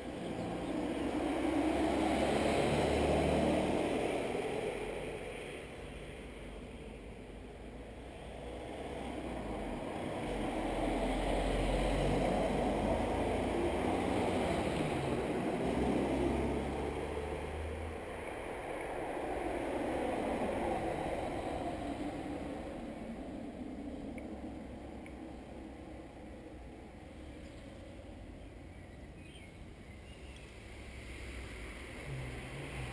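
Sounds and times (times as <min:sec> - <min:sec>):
car passing: 0:00.0 - 0:32.9.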